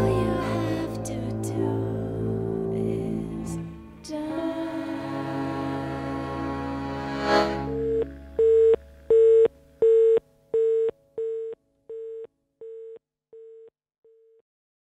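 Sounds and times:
music ending: 0.0s - 9.7s
telephone busy tone beeps: 7.8s - 14.4s.

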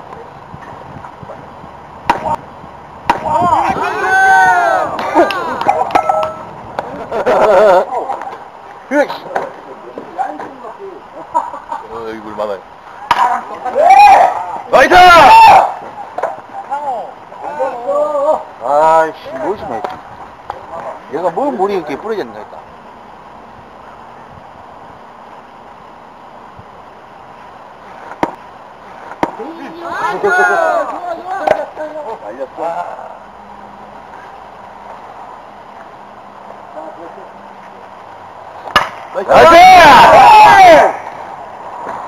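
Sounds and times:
bat hitting baseball: 2.0s - 2.4s, 3.0s - 3.4s, 5.0s - 6.9s, 13.1s - 13.4s, 38.7s - 39.1s
players shouting: 3.1s - 7.2s, 13.0s - 19.9s, 29.2s - 33.3s, 38.6s - 42.0s.

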